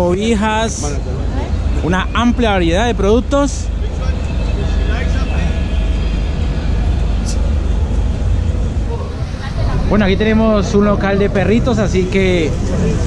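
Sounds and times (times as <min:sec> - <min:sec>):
low rumble: 0:00.7 - 0:13.0.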